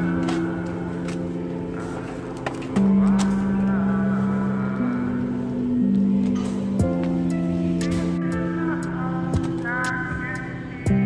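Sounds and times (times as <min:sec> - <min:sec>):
background music of slow chords: 0:00.0 - 0:11.0.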